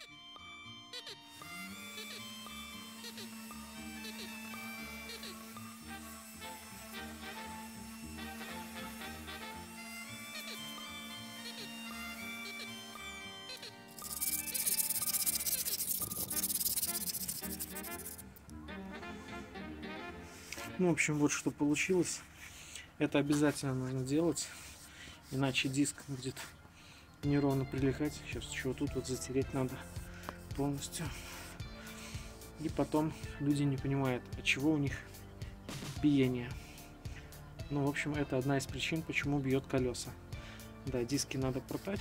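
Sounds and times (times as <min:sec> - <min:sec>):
background music: 0:00.0 - 0:42.0
wire brush scraping metal: 0:14.0 - 0:18.3.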